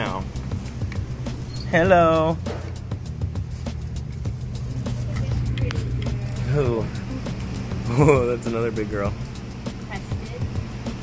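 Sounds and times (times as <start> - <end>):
steady low hum: 0.0 - 11.0
high squeak: 1.4 - 1.9.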